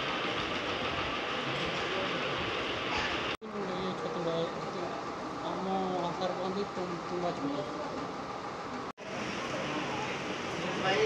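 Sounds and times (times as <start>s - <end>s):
room hiss and hum: 0.0s - 11.0s.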